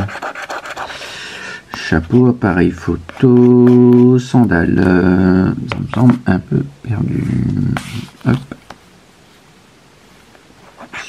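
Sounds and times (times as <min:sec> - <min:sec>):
scratch card scraping: 0:00.0 - 0:01.0, 0:03.1 - 0:04.3, 0:07.8 - 0:08.2, 0:10.7 - 0:11.0.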